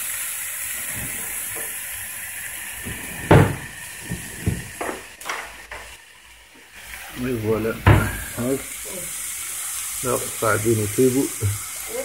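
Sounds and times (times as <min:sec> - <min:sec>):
skewers sizzling on grill pan: 0:00.0 - 0:12.0
knocks: 0:02.8 - 0:05.8, 0:07.8 - 0:08.2.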